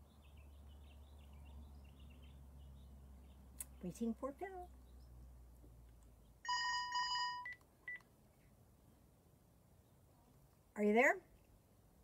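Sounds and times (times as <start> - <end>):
stuttering electronic ringtone: 6.5 - 7.6.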